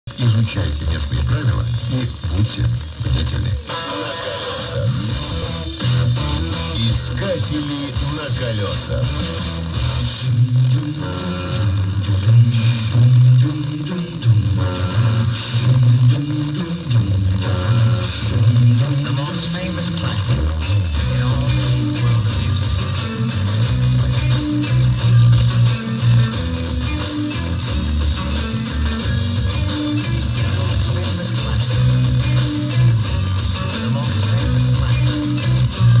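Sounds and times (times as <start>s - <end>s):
guitar music with strong bass: 0.1s - 36.0s.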